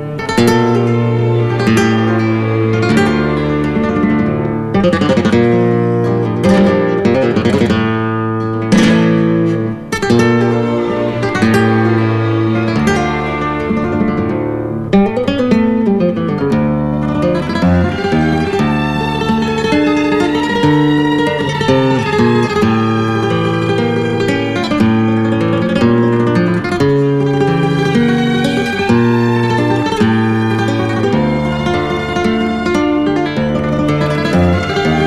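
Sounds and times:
acoustic guitar piece: 0.0s - 35.0s.

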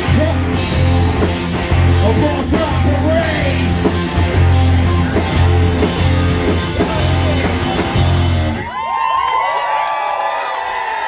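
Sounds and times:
rock song: 0.0s - 8.7s
crowd cheering and whooping: 7.9s - 11.0s.

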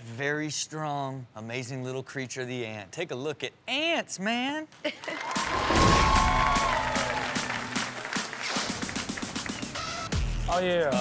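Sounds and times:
audience applause: 5.0s - 9.9s.

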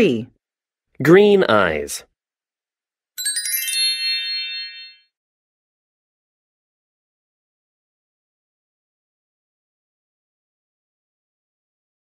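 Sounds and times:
bright electronic chime: 3.2s - 5.1s.

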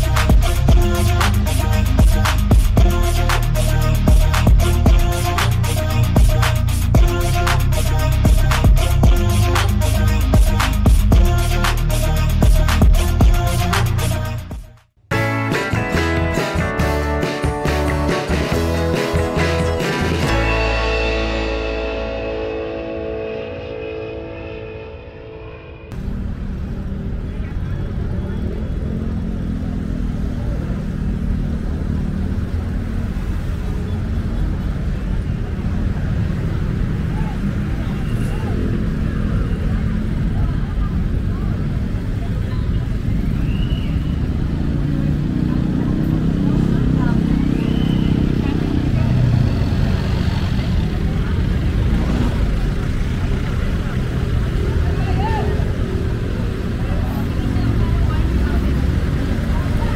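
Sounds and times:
vehicle engines idling and passing: 0.0s - 14.5s, 15.1s - 59.9s
intro music: 0.0s - 26.4s
people's voices: 26.9s - 59.9s.

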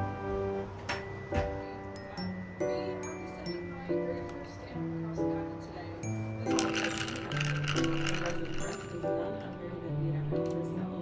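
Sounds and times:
background music: 0.0s - 11.0s
spoon clinking in ceramic mug: 6.0s - 9.7s.

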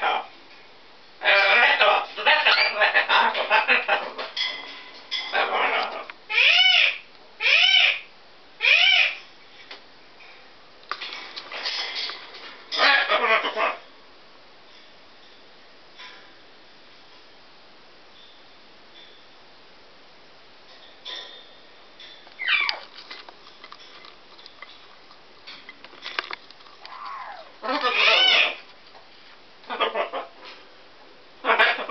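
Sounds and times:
parrot squawk: 1.2s - 4.1s, 5.3s - 9.2s, 12.7s - 13.9s, 22.4s - 22.8s, 26.8s - 28.7s, 29.7s - 30.4s, 31.4s - 31.9s
macaw calling: 5.6s - 9.2s, 22.4s - 22.9s, 26.6s - 28.7s
faint clicks and taps: 22.7s - 27.2s.

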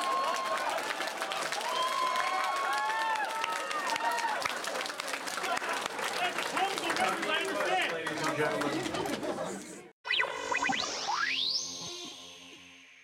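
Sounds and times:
scattered clapping: 0.0s - 9.2s
crowd chatter: 7.1s - 9.9s
electronic logo sting: 10.1s - 13.0s.

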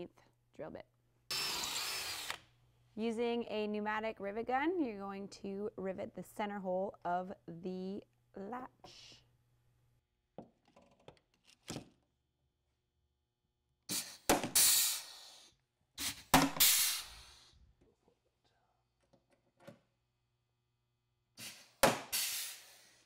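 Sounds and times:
hiss of air: 13.9s - 17.5s, 21.4s - 23.0s.

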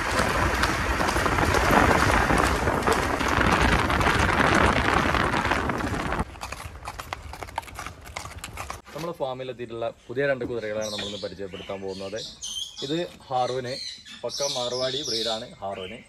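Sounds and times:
horse hoofbeats on paved road: 0.0s - 8.9s.

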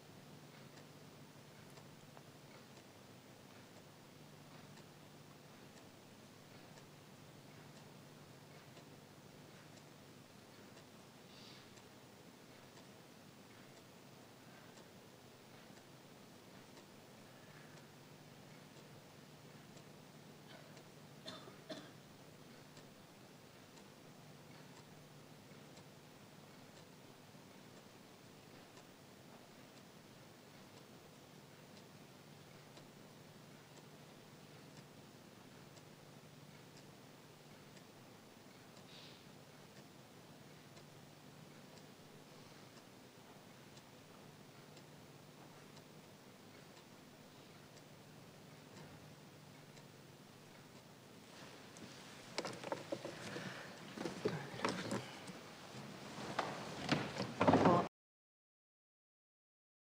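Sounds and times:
faint low hum: 0.0s - 57.9s
small clicks: 51.7s - 55.4s.

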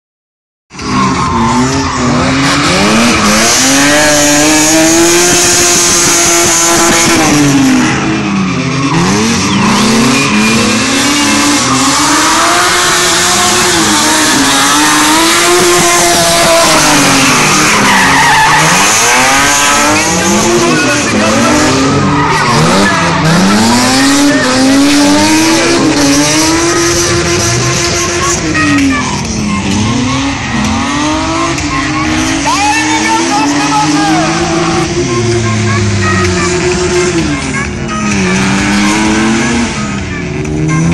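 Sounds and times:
car engine revving: 0.7s - 40.9s
tyre squeal: 8.7s - 28.8s.

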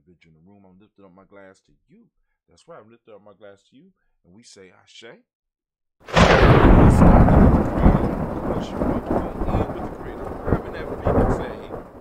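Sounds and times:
thunder rumbling: 6.1s - 12.0s.

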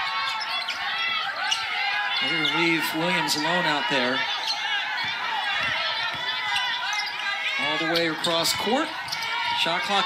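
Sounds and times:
sneakers squeaking on hardwood: 0.0s - 10.0s
basketball dribbling: 0.1s - 10.0s.

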